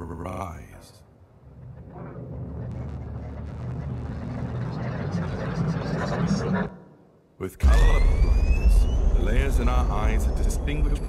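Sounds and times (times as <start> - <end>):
electronic rumble: 1.3 - 6.7, 7.6 - 11.0.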